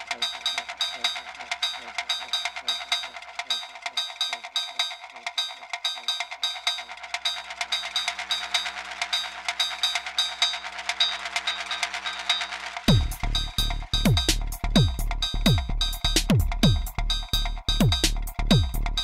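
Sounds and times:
fast high percussion hits: 0.0 - 19.0
held low synth tones: 12.9 - 19.0.

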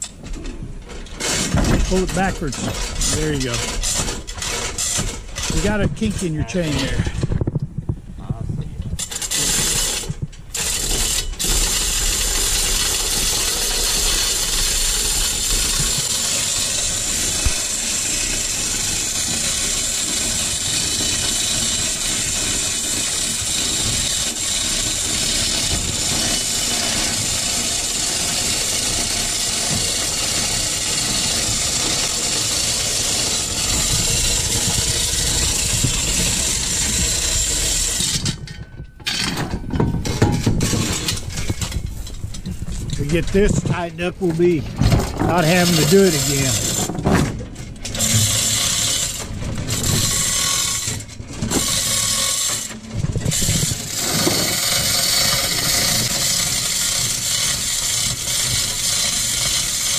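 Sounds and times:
ratchet pawl clicking: 9.0 - 38.4, 47.9 - 59.9.

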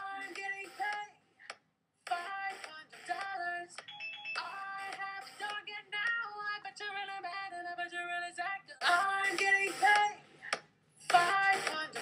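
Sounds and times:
person singing pop song: 0.0 - 12.0.

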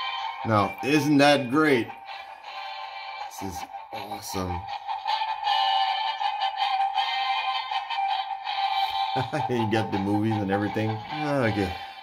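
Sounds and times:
tinny music from tiny speaker: 0.0 - 12.0.

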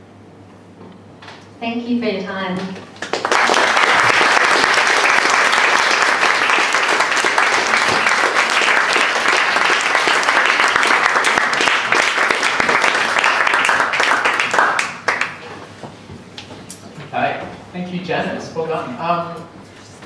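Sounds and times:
audience applauding: 3.0 - 15.6.

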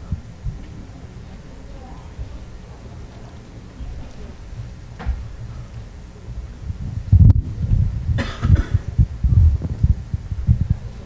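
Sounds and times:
microphone handling thumps: 0.0 - 1.4, 3.8 - 10.9
loud knock: 4.6 - 5.6.

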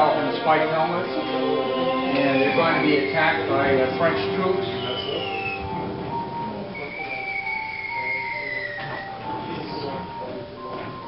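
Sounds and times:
film soundtrack music: 0.0 - 11.0
long falling whistle: 1.7 - 5.8, 6.7 - 10.0.

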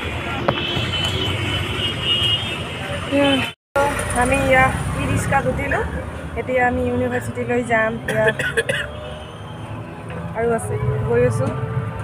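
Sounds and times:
road traffic rumble: 0.0 - 12.0
woman talking: 10.4 - 11.6.

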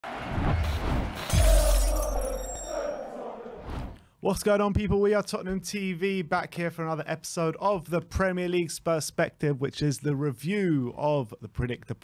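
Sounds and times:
glass shattering crash: 1.2 - 2.7.

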